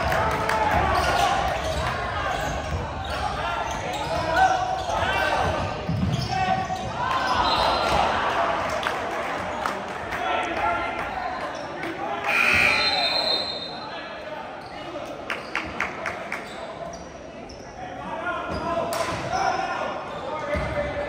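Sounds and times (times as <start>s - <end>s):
players shouting: 0.0s - 9.0s.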